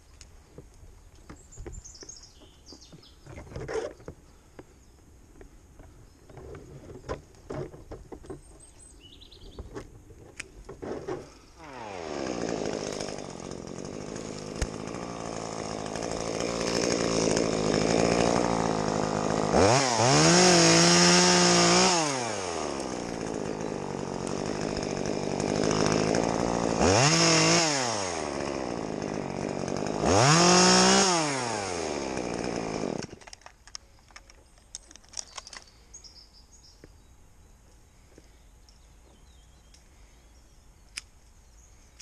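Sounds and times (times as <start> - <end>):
chainsaw revving: 10.8 - 33.3.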